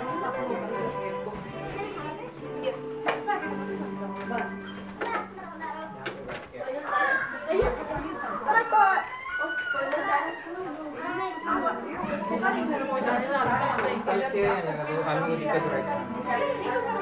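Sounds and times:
background music with held notes: 0.0s - 6.6s, 11.3s - 17.0s
children's voices and chatter: 0.0s - 17.0s.

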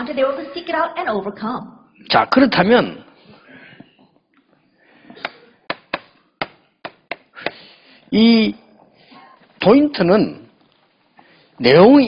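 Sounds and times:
chalk tapping on blackboard: 5.2s - 7.6s.

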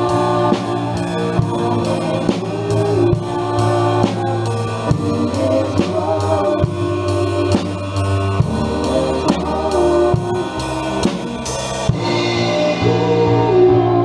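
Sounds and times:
acoustic drum kit beat: 0.0s - 14.0s
band sustained chords: 0.0s - 14.0s
people singing: 0.0s - 14.0s.

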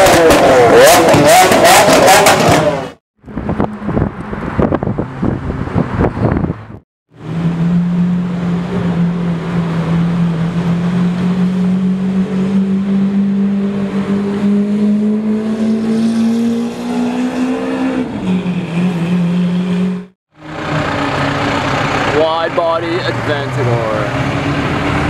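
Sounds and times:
car engine revving: 0.0s - 25.0s.

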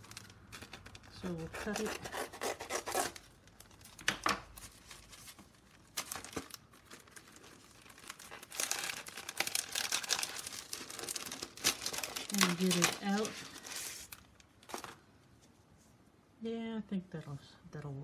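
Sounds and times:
cellophane crinkling and tearing: 0.0s - 15.1s.

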